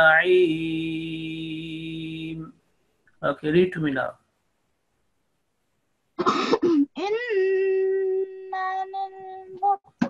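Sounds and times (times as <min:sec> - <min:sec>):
person coughing: 0:06.2 - 0:06.9.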